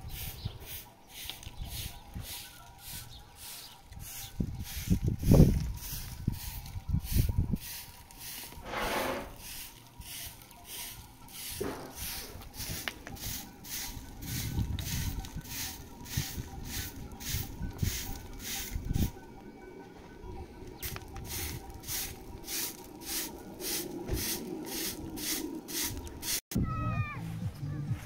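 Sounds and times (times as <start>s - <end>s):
hand broom sweeping dirt and gravel: 0.0s - 19.2s, 20.8s - 26.4s.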